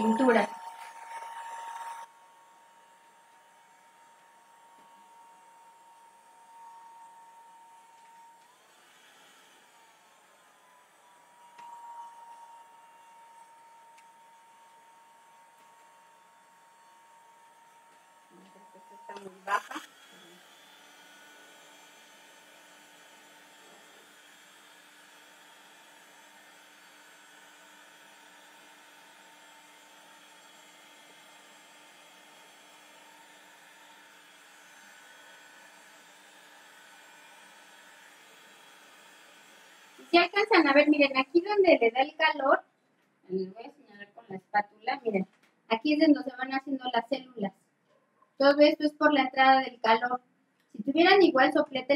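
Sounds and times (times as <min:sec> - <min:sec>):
heat gun whine: 0:00.0 - 0:42.4.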